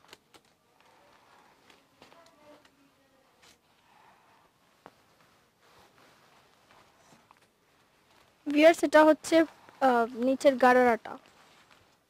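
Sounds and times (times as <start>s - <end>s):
faint rustle of fabric: 0.0s - 12.0s.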